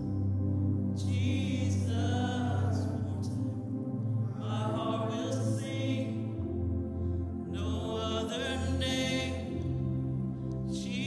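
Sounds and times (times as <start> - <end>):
sustained instrumental backing: 0.0 - 11.0
man singing into microphone: 1.0 - 3.4, 7.6 - 9.5.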